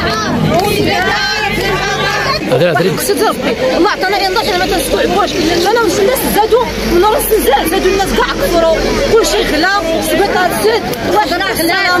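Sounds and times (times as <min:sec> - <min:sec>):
overlapping voices talking: 0:00.0 - 0:12.0
woman talking: 0:02.8 - 0:12.0.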